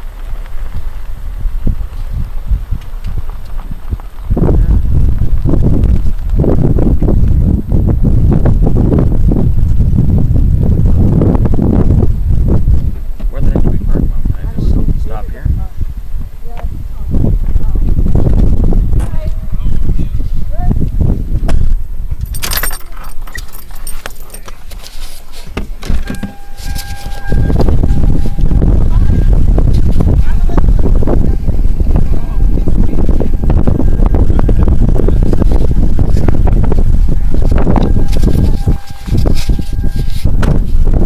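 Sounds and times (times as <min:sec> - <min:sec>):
low rumble: 0:00.0 - 0:24.3, 0:25.6 - 0:41.0
wind buffeting microphone: 0:00.0 - 0:41.0
keys jingling: 0:22.2 - 0:27.3
steady high tone: 0:22.4 - 0:41.0.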